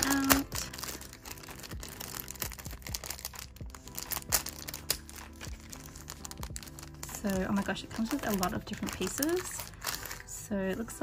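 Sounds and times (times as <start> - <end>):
faint background music: 0.0 - 11.0
plastic bags crinkling: 0.0 - 11.0.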